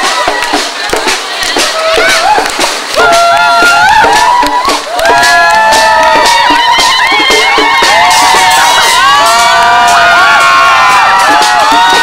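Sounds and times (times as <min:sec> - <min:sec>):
crowd shouting and cheering: 0:00.0 - 0:12.0
drumbeats: 0:00.0 - 0:12.0.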